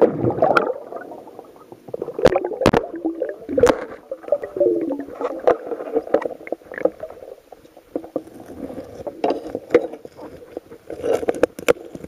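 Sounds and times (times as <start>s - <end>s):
water sloshing underwater: 0.0s - 12.0s.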